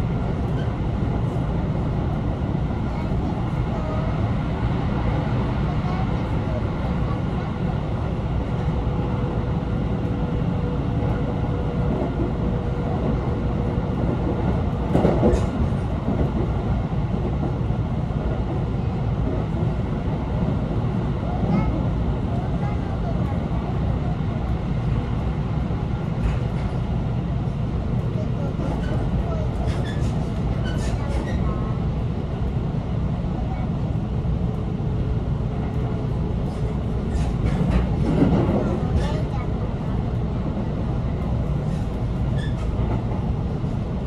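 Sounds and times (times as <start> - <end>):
train wheels rumbling on rails: 0.0 - 44.0.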